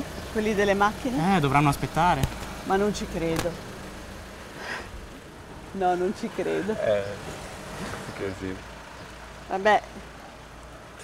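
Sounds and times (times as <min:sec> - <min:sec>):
car engines idling: 0:00.0 - 0:11.0.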